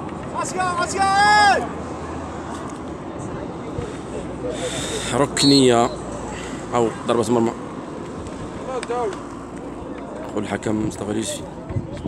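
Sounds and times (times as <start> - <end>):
wind on microphone: 11.6 - 12.0.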